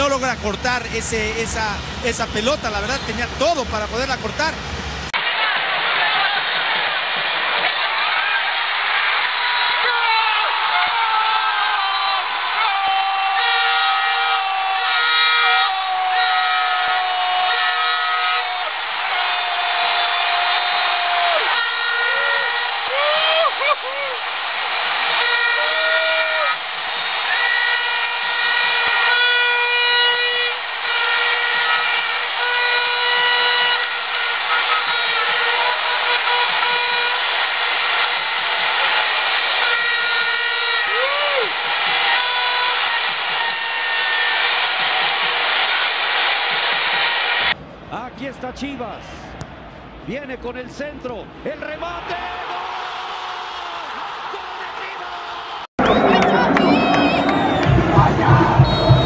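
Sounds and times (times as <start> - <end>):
stadium crowd noise: 0.0 - 59.0
air horns blowing: 13.0 - 23.1, 25.0 - 46.0, 55.8 - 59.0.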